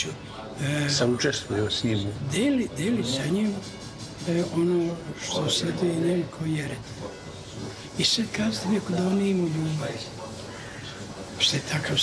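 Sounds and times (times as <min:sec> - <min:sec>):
man speaking: 0:00.0 - 0:06.9, 0:07.9 - 0:10.2.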